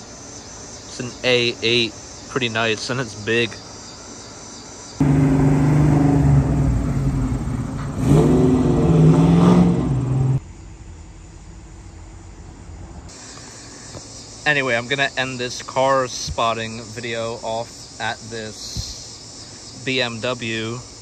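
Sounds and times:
car engine revving: 0:05.0 - 0:10.4.

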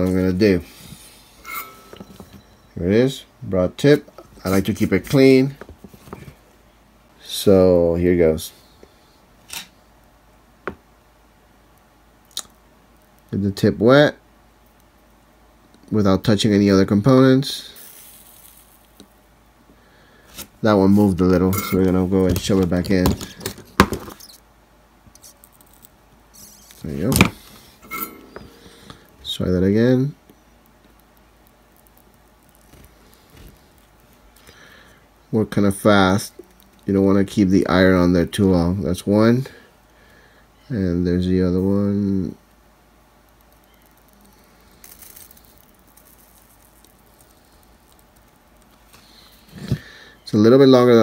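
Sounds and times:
soldering iron crackle and sizzle: 0:11.6 - 0:19.6, 0:20.3 - 0:39.5, 0:41.2 - 0:51.0.

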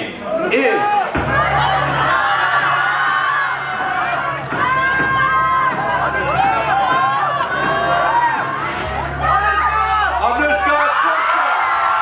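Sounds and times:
crowd cheering: 0:00.2 - 0:12.0.

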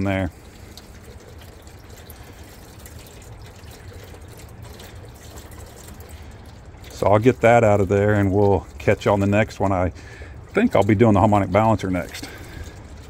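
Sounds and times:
coolant trickling into buckets: 0:00.0 - 0:13.0.

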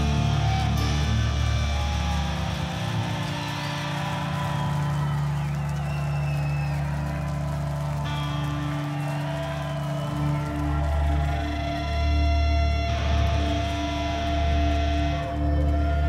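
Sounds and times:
metal band playing held chords: 0:00.0 - 0:16.0.

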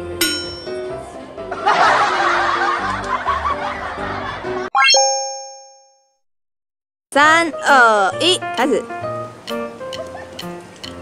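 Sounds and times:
laugh track laughter: 0:01.4 - 0:04.7
light background music: 0:07.1 - 0:11.0.

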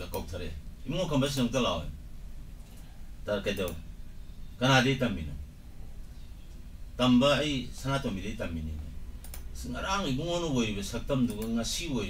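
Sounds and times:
man talking: 0:00.0 - 0:02.0, 0:03.2 - 0:03.8, 0:04.6 - 0:05.4, 0:07.0 - 0:08.9, 0:09.6 - 0:12.0.

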